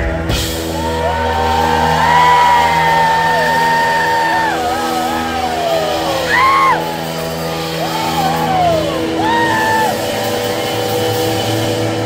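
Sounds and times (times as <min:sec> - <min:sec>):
live rock band droning chord: 0:00.0 - 0:12.0.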